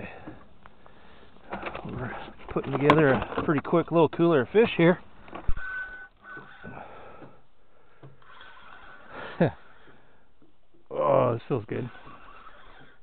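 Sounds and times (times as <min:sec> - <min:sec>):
squeak falling in pitch: 0:05.5 - 0:06.8.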